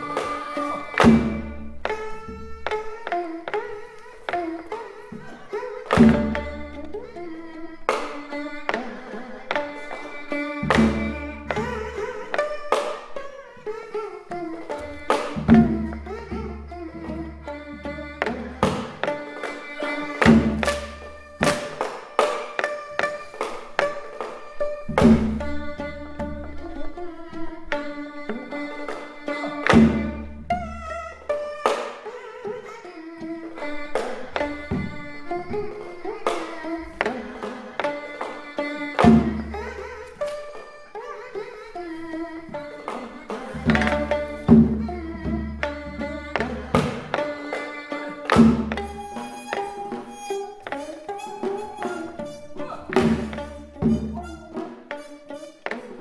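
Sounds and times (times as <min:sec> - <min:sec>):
string instruments slow melody: 0:00.0 - 0:56.0.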